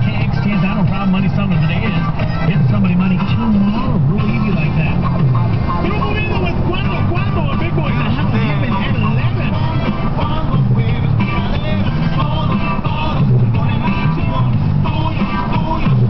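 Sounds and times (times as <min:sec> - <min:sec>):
car radio music: 0:00.0 - 0:16.0
road noise: 0:00.0 - 0:16.0
voice over radio music: 0:00.2 - 0:09.5.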